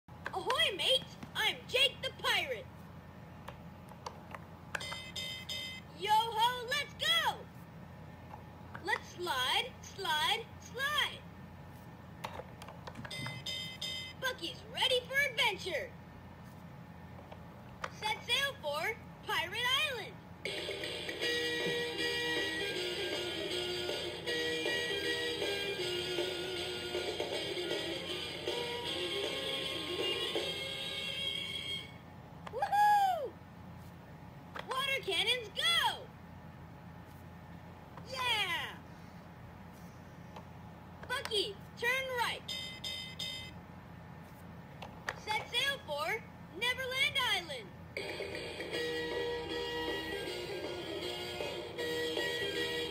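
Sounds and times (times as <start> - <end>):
electronic toy tones: 4.7 - 5.8, 13.1 - 14.2, 42.4 - 43.6
tinny electronic toy tune: 4.8 - 5.8, 13.1 - 14.2, 42.4 - 43.6, 48.0 - 52.9.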